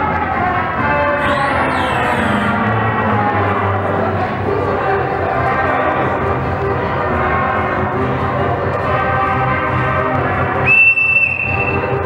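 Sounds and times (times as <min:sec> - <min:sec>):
ragtime dance music: 0:01.0 - 0:03.5
whistle blast: 0:01.2 - 0:02.7, 0:10.7 - 0:12.0.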